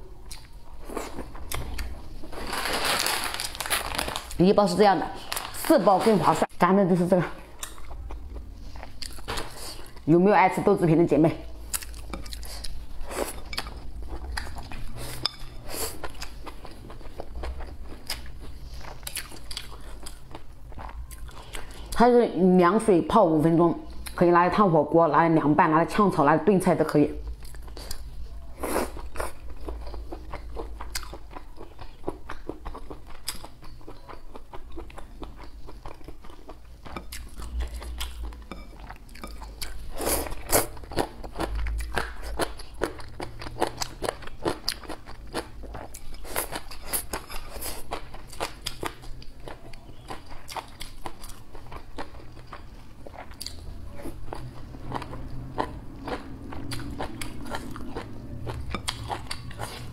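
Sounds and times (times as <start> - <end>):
person chewing food: 0.0 - 4.3, 7.4 - 10.1, 11.5 - 22.0, 27.3 - 59.9.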